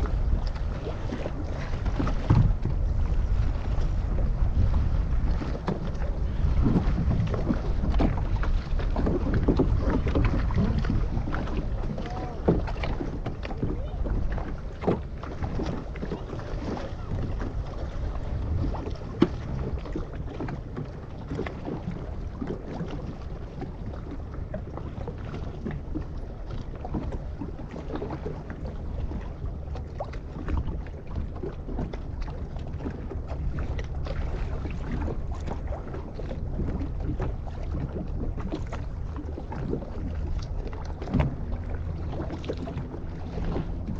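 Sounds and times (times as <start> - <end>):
waves lapping against boat hull: 0.0 - 43.9
wind buffeting microphone: 0.0 - 43.9.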